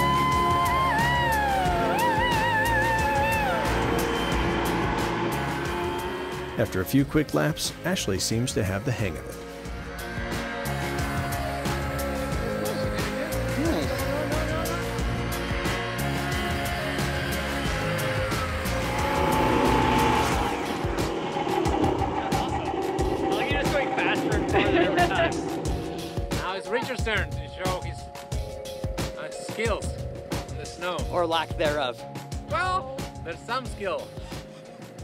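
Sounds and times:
background music: 0.0s - 35.0s
snowmobile engine revving: 1.7s - 7.8s, 17.0s - 26.8s.

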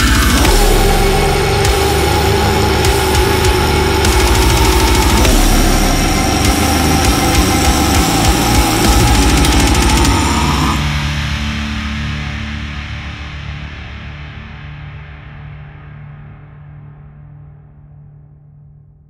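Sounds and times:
fast dense drumming: 0.0s - 10.9s
long harsh scream: 0.0s - 11.1s.

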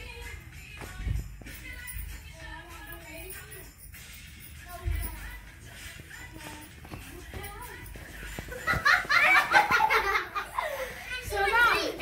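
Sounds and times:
woman and girls laughing: 8.2s - 11.2s.

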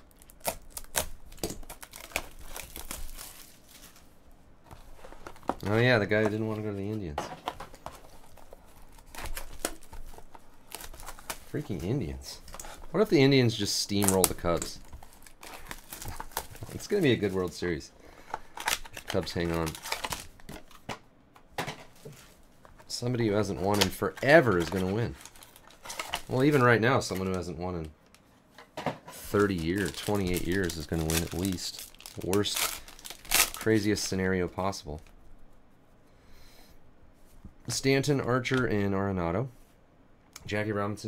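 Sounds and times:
plastic packaging crinkling: 0.0s - 4.1s, 4.7s - 20.8s, 22.6s - 27.4s, 29.2s - 34.3s.

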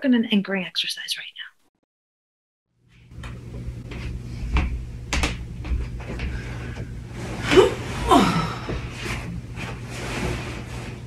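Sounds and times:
steady low hum: 2.8s - 11.0s
sharp knocks and clicks: 4.6s - 6.2s.

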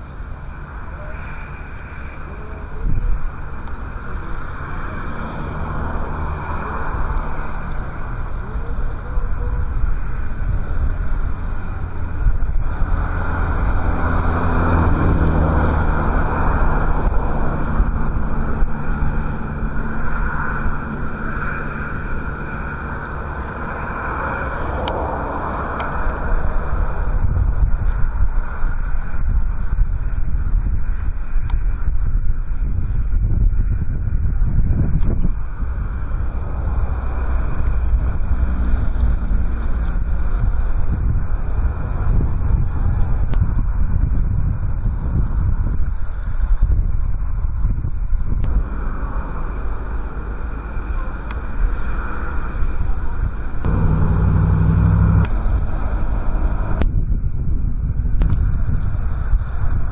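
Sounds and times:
low engine hum: 0.0s - 59.9s
wind buffeting microphone: 0.0s - 59.9s.

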